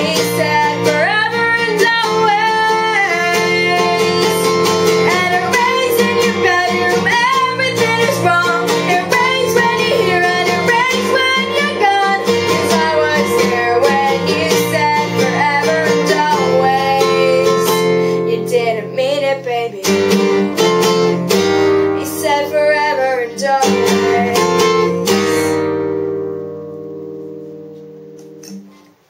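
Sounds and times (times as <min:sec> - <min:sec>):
woman singing: 0:00.0 - 0:20.3, 0:21.7 - 0:25.8
acoustic guitar: 0:00.0 - 0:29.0.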